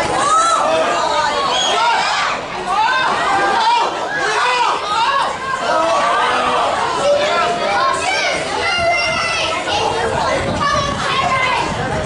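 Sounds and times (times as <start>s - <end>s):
children shouting at play: 0.0s - 12.0s.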